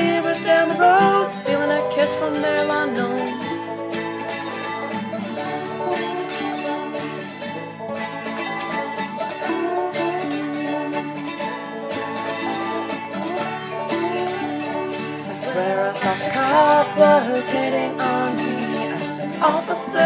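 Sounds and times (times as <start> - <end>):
acoustic strings: 0.0 - 20.0
plucked banjo: 0.0 - 20.0.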